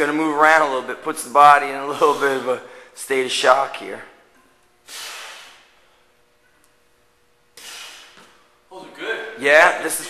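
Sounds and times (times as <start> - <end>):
man exhaling hard: 4.9 - 5.7, 7.6 - 8.2.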